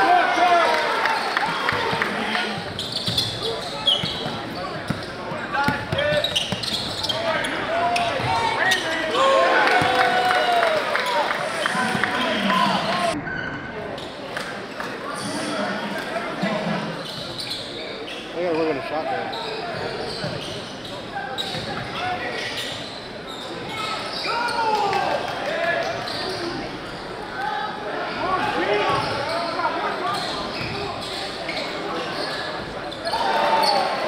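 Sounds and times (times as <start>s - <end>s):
murmur of crowd voices: 0.0s - 34.0s
sneakers squeaking on hardwood: 2.6s - 9.0s, 19.3s - 24.6s, 28.8s - 33.9s.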